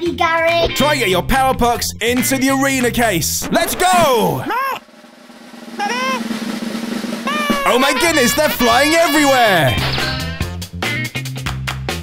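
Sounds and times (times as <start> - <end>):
brief high exclamation: 5.8 - 6.3, 7.2 - 9.8.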